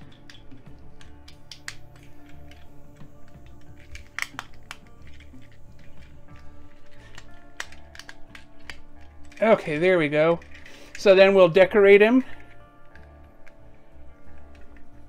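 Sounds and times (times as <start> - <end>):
plastic toy parts clicking: 0.0 - 11.2, 12.3 - 15.0
background music with low beat: 0.0 - 15.0.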